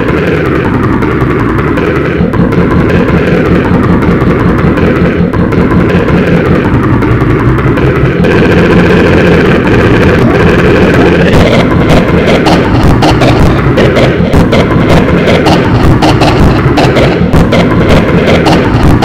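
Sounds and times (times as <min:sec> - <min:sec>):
layered pitch-shifted buzzing audio: 0:00.0 - 0:19.0.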